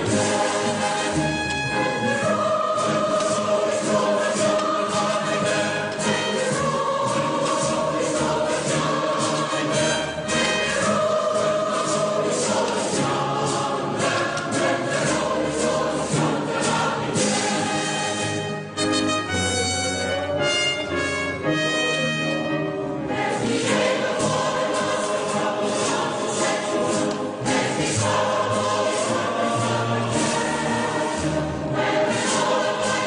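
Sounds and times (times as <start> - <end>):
choir singing a hymn: 0.0 - 21.6, 22.7 - 33.0.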